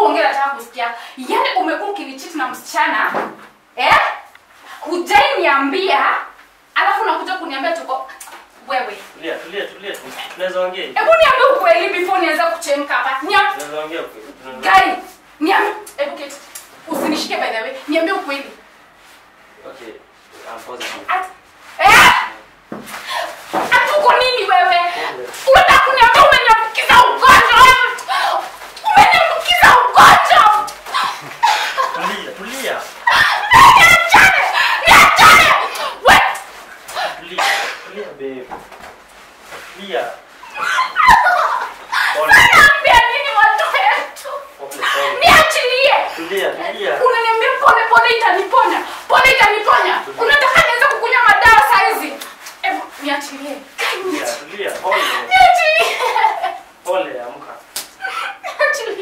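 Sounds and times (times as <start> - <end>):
people shouting and yelping: 21.1 - 22.4, 23.1 - 37.7, 40.4 - 52.9, 53.8 - 56.7, 57.8 - 59.0
person's voice outbursts: 33.1 - 36.2, 40.6 - 46.3
sharp slap: 57.7 - 58.0.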